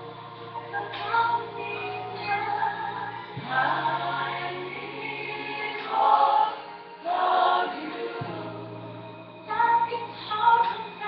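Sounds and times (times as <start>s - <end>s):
choir singing: 0.0s - 11.0s.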